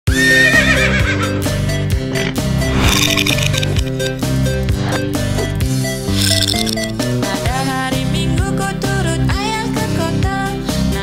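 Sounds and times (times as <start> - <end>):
horse whinnying: 0.1 - 1.4.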